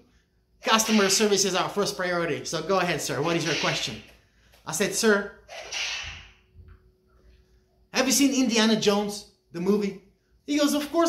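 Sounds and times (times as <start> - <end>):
man speaking: 0.6 - 5.4, 7.9 - 11.0.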